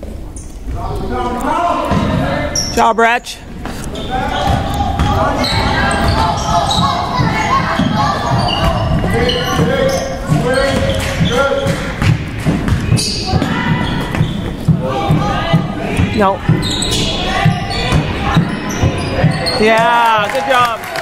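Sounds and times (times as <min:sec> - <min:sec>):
voices in echoing gym: 0:00.0 - 0:21.0
basketball dribbling on hardwood: 0:04.4 - 0:20.0.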